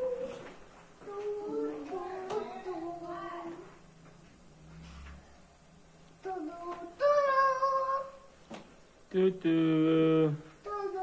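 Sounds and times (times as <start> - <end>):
child singing: 1.0 - 3.8, 6.2 - 8.3, 10.6 - 11.0.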